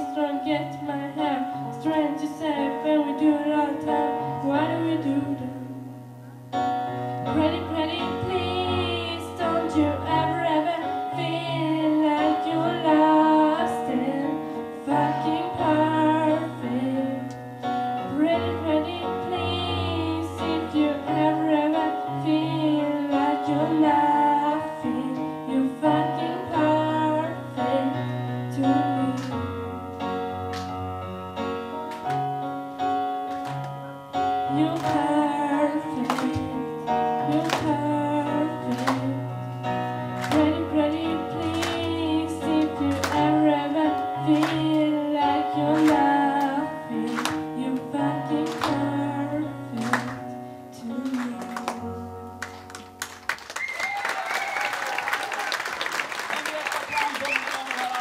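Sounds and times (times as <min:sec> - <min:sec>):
girl singing into microphone: 0:00.0 - 0:06.0, 0:07.2 - 0:29.8, 0:34.3 - 0:52.6
sustained keyboard chords: 0:00.0 - 0:53.4.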